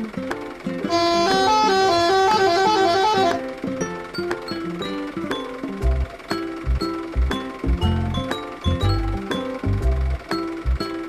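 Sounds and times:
background music: 0:00.0 - 0:11.0
musical truck horn melody: 0:00.8 - 0:03.8.

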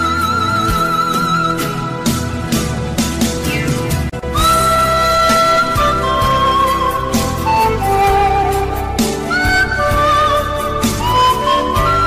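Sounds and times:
pan flute music: 0:00.0 - 0:12.0.

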